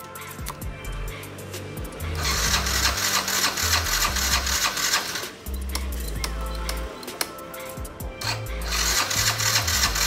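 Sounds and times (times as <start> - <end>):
background music: 0.0 - 10.0
scooter engine turning over: 2.2 - 5.4, 8.3 - 10.0.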